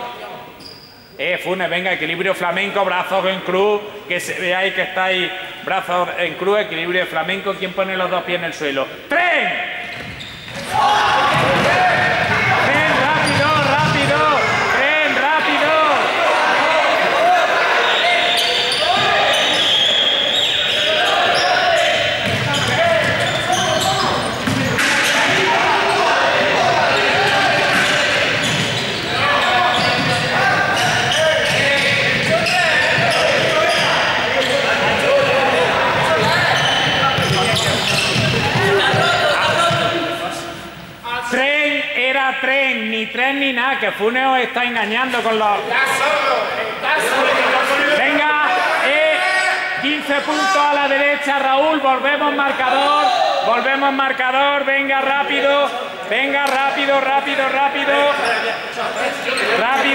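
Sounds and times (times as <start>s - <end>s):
crowd shouting and cheering: 9.3s - 41.2s, 45.4s - 54.1s
running feet on court floor: 9.9s - 14.8s, 21.4s - 40.1s.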